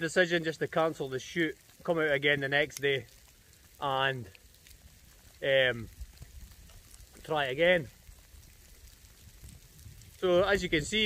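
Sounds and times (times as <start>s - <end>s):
wind rumble on microphone: 5.7s - 11.0s.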